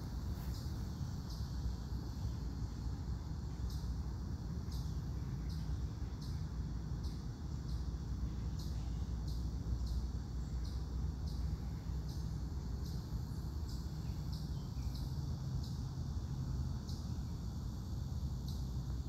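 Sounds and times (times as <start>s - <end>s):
insect chirping: 0.0s - 19.0s
low steady rumble: 0.0s - 19.0s.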